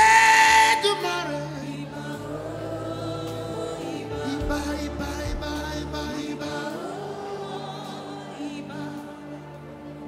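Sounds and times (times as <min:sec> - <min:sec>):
held keyboard chords: 0:00.0 - 0:10.0.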